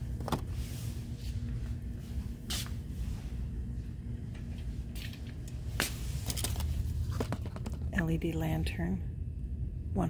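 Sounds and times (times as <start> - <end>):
store background rumble: 0.0 - 10.0.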